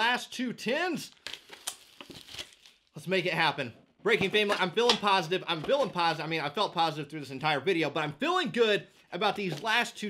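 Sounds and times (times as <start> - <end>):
plastic shrink wrap crinkling: 1.1 - 3.0.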